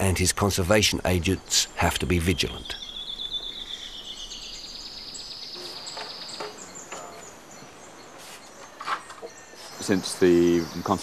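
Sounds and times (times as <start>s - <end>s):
faint forest ambience: 0.0s - 11.0s
higher insect trill: 0.0s - 11.0s.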